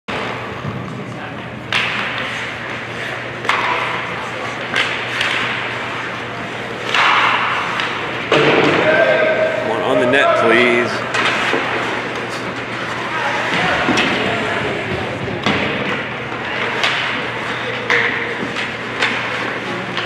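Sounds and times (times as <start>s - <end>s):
puck and sticks knocking on boards: 0.1s - 6.1s, 6.8s - 9.4s, 11.1s - 20.0s
players shouting: 8.3s - 12.2s.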